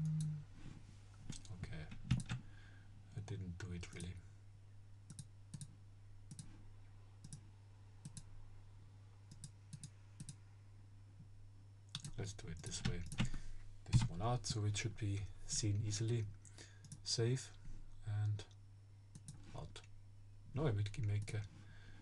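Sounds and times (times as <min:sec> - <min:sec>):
low electrical hum: 0:00.0 - 0:22.0
computer mouse clicking: 0:01.3 - 0:02.4, 0:05.1 - 0:05.7, 0:06.3 - 0:06.5, 0:07.2 - 0:07.4, 0:08.0 - 0:08.3, 0:09.3 - 0:10.4, 0:19.1 - 0:19.4.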